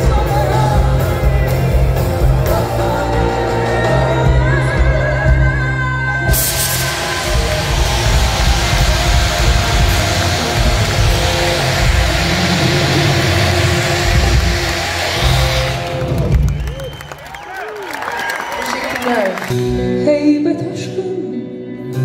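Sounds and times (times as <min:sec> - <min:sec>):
live band music: 0:00.0 - 0:22.0
loud hiss of vapour jet: 0:06.3 - 0:16.0.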